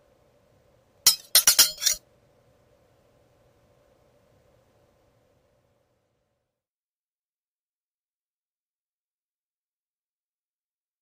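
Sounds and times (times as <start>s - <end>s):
sharp bright clinking: 1.1s - 2.0s.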